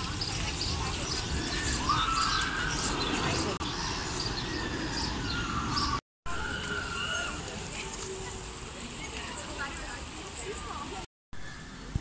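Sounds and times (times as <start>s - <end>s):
birds chirping: 0.0s - 11.8s.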